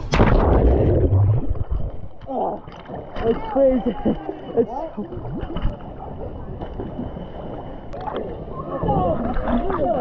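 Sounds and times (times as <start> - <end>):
water sloshing against microphone: 0.0 - 10.0.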